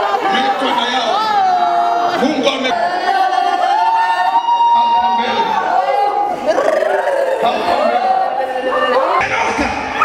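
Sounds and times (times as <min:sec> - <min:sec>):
crowd voices echoing in a hall: 0:00.0 - 0:10.0.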